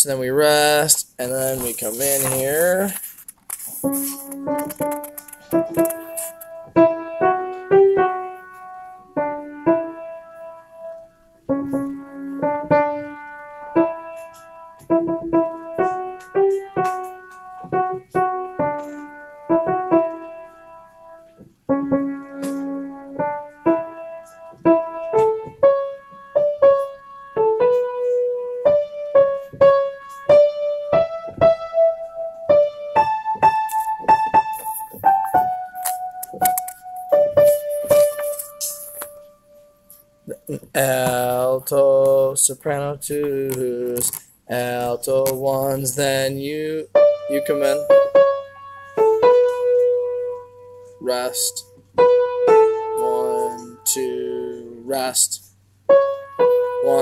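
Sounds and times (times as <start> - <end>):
piano notes and chords: 0.0 - 57.0.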